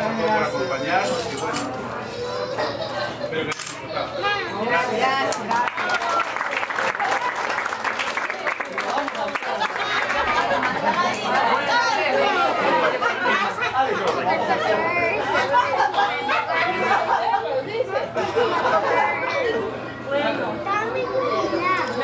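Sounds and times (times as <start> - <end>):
guests chattering: 0.0 - 22.0.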